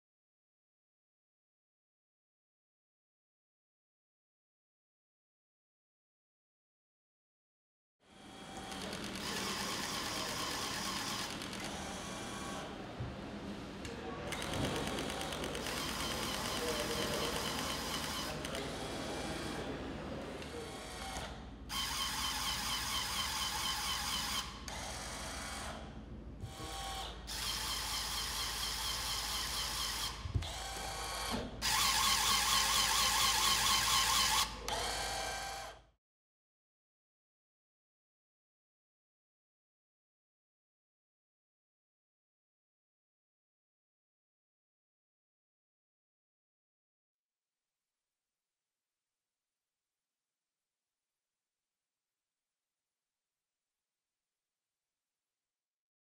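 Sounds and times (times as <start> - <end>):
small electric motors whirring: 8.1 - 12.7, 14.3 - 19.6, 26.5 - 35.8.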